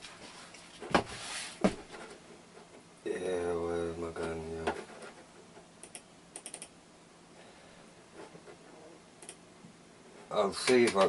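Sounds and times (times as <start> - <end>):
computer keyboard keystrokes: 5.8 - 6.7.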